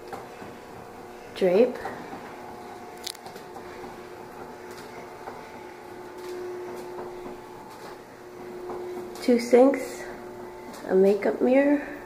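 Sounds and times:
electric curtain motor hum: 0.0 - 12.0.

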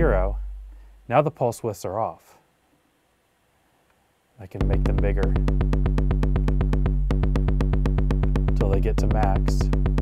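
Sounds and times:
bass drum module rapid clicks: 4.6 - 10.0
sustained low boom: 4.6 - 10.0.

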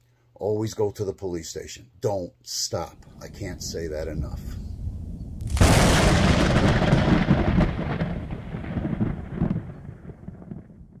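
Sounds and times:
low rumble: 3.0 - 10.1
cinematic boom crash: 5.0 - 9.6.

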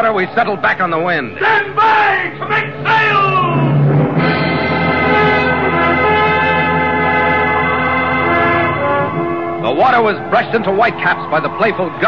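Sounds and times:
orchestral music with brass: 1.4 - 12.0.

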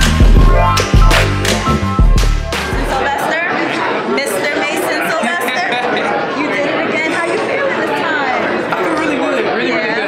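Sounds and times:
crowd chatter: 0.0 - 10.0
close conversation: 2.7 - 10.0.

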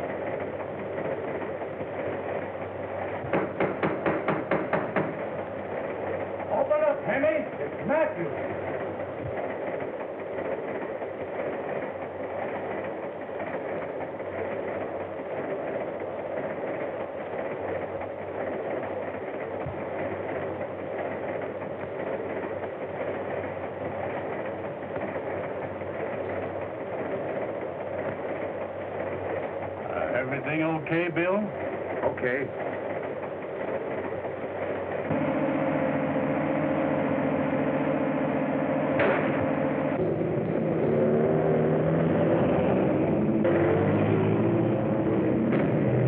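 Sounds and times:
train running inside railroad car: 0.0 - 46.0.

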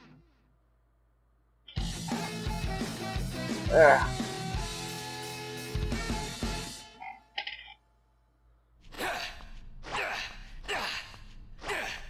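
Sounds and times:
music: 1.7 - 7.0.

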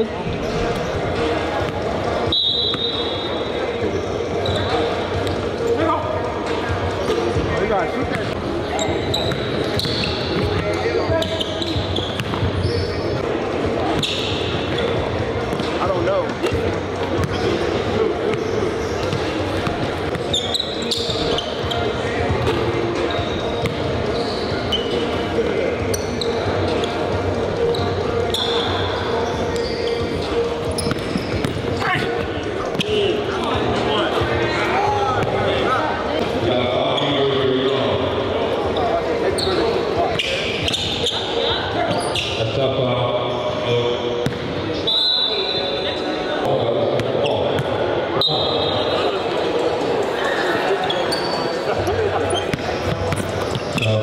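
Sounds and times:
people chattering: 0.0 - 54.0.

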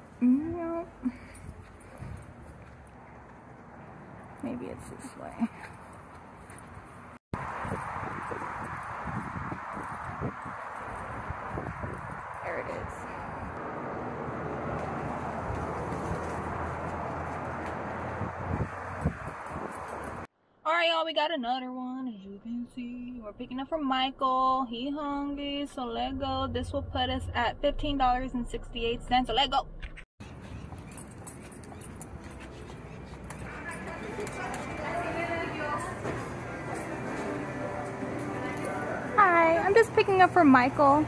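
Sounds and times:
outdoor background noise: 0.0 - 41.0
handling and footstep noise: 1.0 - 4.4, 5.2 - 12.4, 14.7 - 20.3, 30.2 - 40.2.

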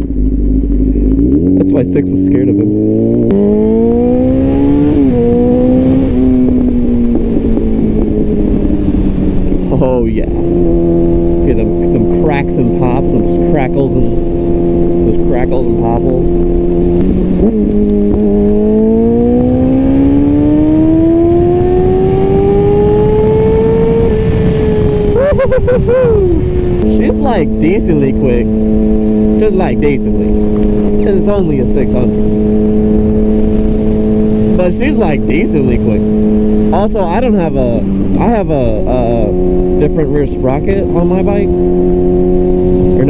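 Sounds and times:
motorcycle engine shifting gears: 0.0 - 43.0.

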